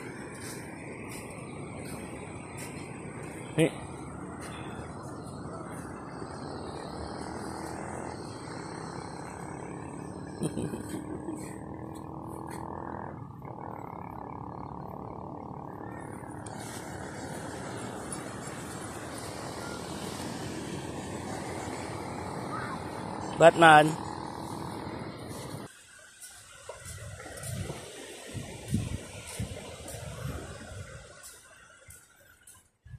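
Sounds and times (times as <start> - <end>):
rushing outdoor background noise: 0.0 - 32.9.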